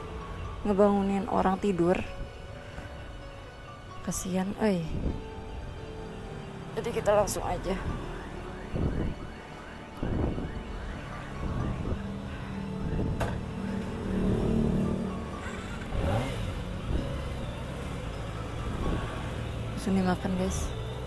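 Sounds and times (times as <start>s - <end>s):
motorcycle engine revving: 11.3s - 21.0s.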